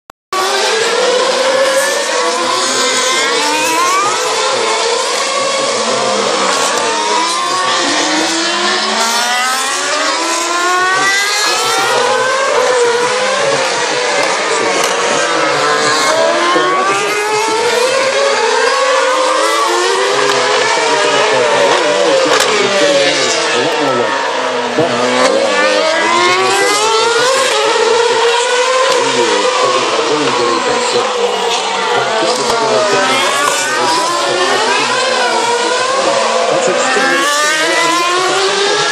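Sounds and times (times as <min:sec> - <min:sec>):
racing cars passing at high revs: 0:00.4 - 0:38.9.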